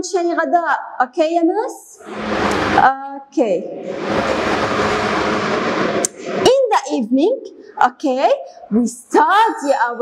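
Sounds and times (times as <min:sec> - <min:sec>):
steady rushing rumbling noise: 0:02.0 - 0:02.9, 0:03.7 - 0:06.8.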